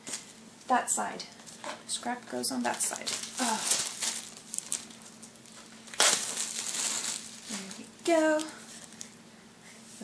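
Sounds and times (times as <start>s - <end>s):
plastic shrink wrap crinkling: 2.5s - 9.2s.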